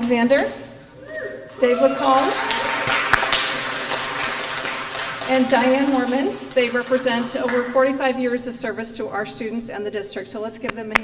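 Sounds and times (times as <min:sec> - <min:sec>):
audience applauding: 0:01.6 - 0:07.7.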